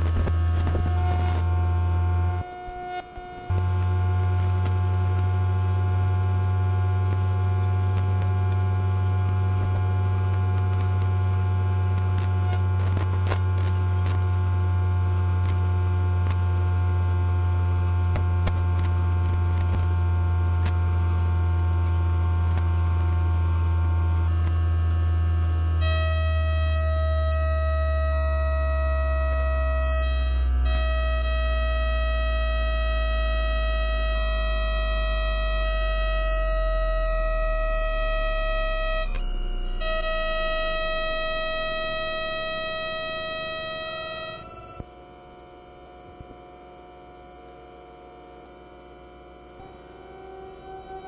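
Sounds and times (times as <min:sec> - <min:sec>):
electronic drone music: 0:00.0 - 0:10.7, 0:25.7 - 0:44.9.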